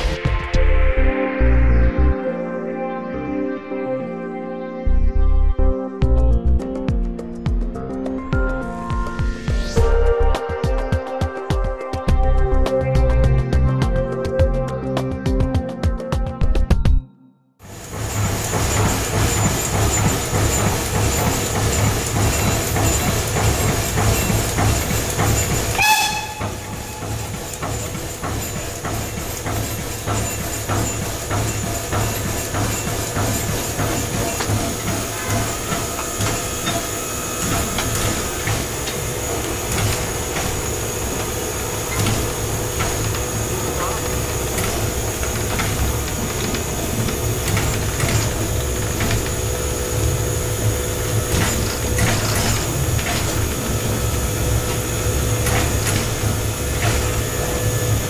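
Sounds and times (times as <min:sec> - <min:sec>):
steam air pump beating: 0:17.6 - 0:58.0.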